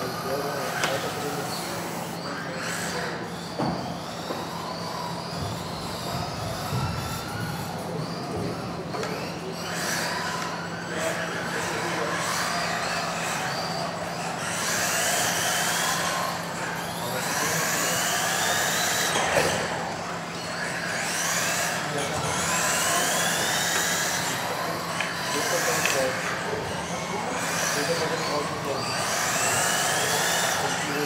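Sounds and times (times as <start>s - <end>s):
murmur of voices: 0.0s - 31.0s
toy car motors whining: 0.0s - 31.0s.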